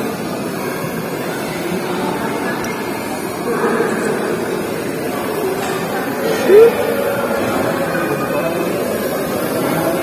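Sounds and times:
din of busy indoor hall: 0:00.0 - 0:10.0.

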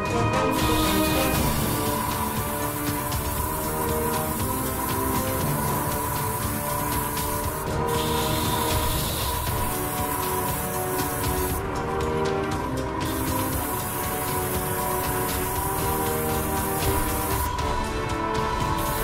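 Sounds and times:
background music: 0:00.0 - 0:19.0
airbrush hissing: 0:00.5 - 0:11.9, 0:12.5 - 0:17.8, 0:18.4 - 0:19.0.

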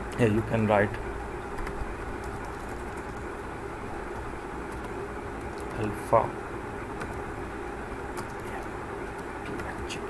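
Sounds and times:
low room hum: 0:00.0 - 0:10.0
keyboard clicks: 0:01.6 - 0:03.3, 0:08.2 - 0:09.9.

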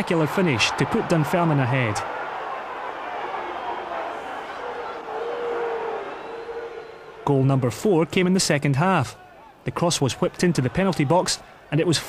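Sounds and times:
crowd hubbub: 0:02.0 - 0:06.0.

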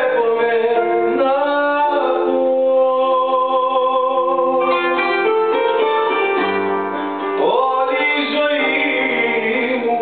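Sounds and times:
man singing: 0:00.0 - 0:05.8, 0:07.2 - 0:10.0
digital piano: 0:00.0 - 0:10.0.

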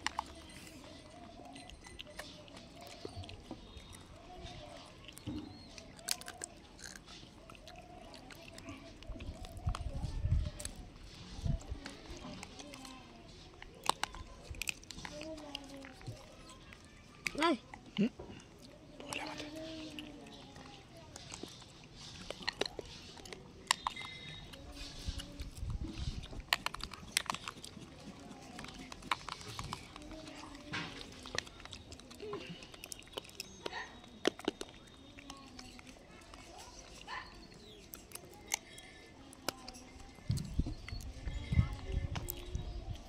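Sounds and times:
monkeys chewing dry grains: 0:00.0 - 0:43.0
sharp cracks of biting: 0:04.8 - 0:10.8, 0:11.6 - 0:41.0.

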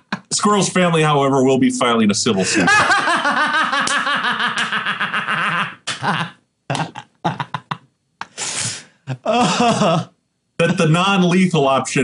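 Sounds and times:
man laughing hard: 0:02.4 - 0:08.4, 0:09.1 - 0:10.2.

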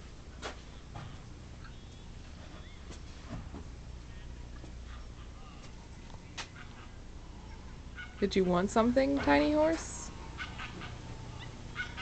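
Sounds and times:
quiet background hum: 0:00.0 - 0:12.0.

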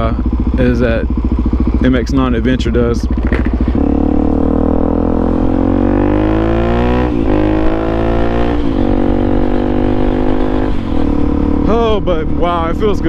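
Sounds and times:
motorcycle engine accelerating: 0:00.0 - 0:13.0.

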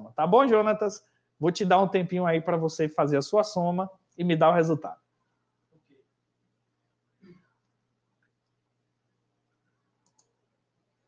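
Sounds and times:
faint clicks: 0:10.0 - 0:10.4.

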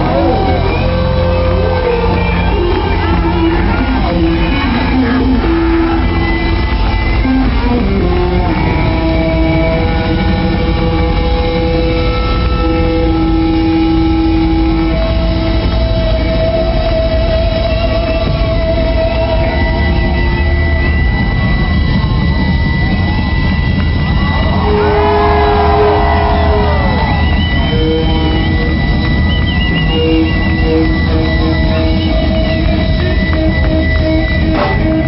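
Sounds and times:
bending gliding guitar notes: 0:00.0 - 0:35.0
live rock band playing: 0:00.0 - 0:35.0.

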